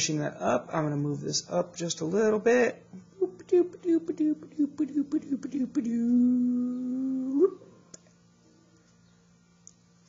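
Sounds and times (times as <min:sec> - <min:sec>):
man humming: 0:02.9 - 0:08.0.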